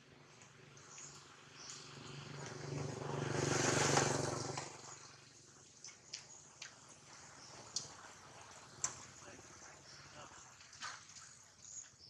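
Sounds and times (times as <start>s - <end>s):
motor vehicle passing by: 0.0s - 5.7s.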